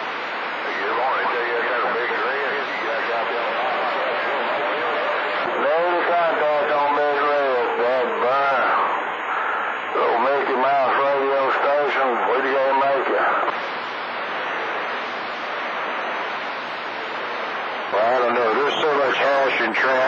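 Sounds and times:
radio static hiss: 0:00.0 - 0:20.0
voice over radio: 0:00.6 - 0:13.6, 0:17.9 - 0:20.0.

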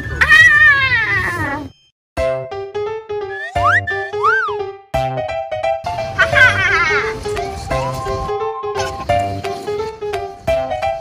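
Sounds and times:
cat meowing: 0:00.1 - 0:01.7.

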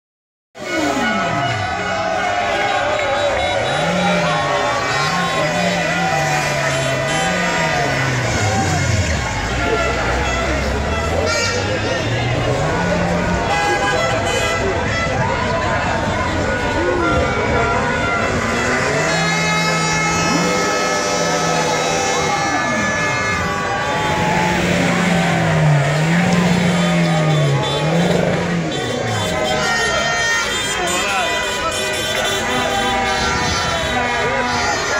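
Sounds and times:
large street crowd noise: 0:00.5 - 0:34.9
car engine revving: 0:03.5 - 0:13.5, 0:18.1 - 0:29.4.

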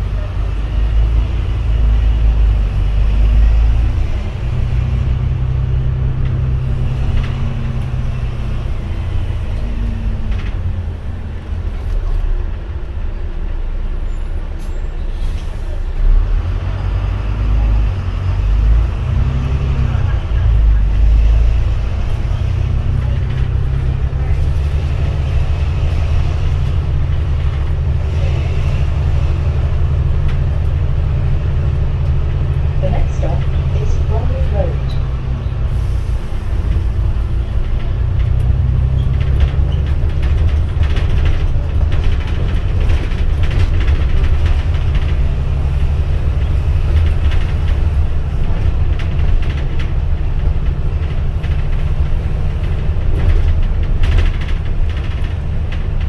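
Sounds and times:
bus engine drone: 0:00.0 - 0:56.0.

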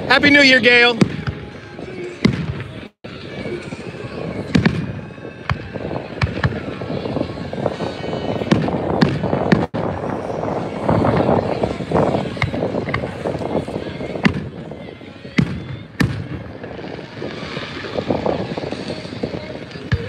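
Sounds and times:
fireworks bangs and pops: 0:00.2 - 0:01.5, 0:02.2 - 0:02.9, 0:04.5 - 0:07.8, 0:08.4 - 0:14.6, 0:15.3 - 0:20.0.

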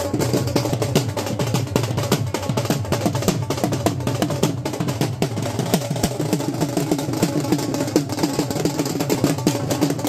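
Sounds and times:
drums beaten with sticks: 0:00.0 - 0:10.0.

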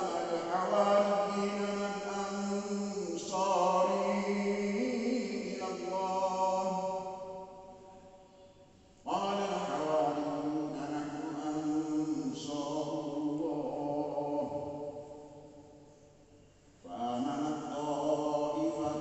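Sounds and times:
man chanting through loudspeaker: 0:00.0 - 0:07.2, 0:09.1 - 0:14.9, 0:16.8 - 0:19.0.

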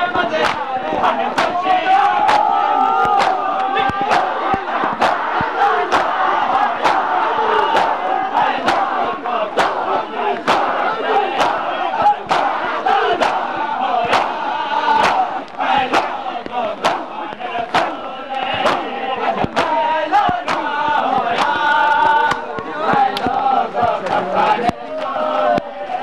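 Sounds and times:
men shouting and chanting: 0:00.0 - 0:26.0
chest beating slaps: 0:00.4 - 0:25.7.

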